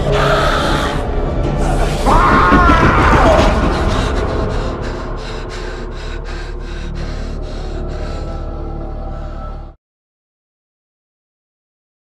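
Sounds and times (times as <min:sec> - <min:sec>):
low steady drone: 0:00.0 - 0:09.8.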